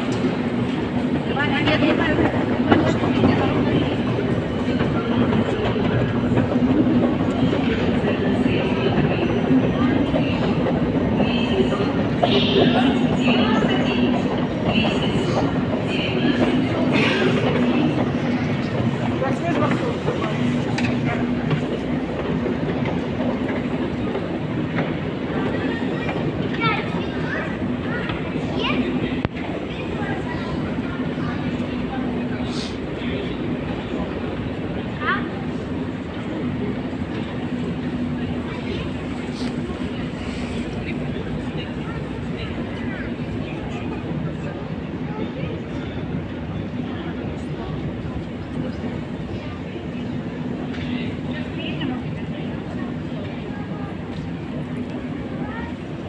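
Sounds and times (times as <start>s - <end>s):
murmur of voices: 0.0s - 56.0s.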